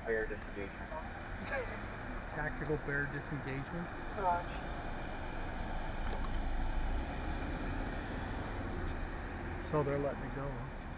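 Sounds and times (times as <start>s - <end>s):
vehicle driving past slowly: 1.1s - 10.9s.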